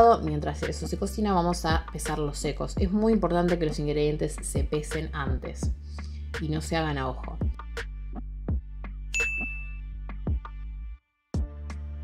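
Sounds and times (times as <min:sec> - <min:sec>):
background music with steady beat: 0:00.0 - 0:12.0
bright ding: 0:09.2 - 0:09.8.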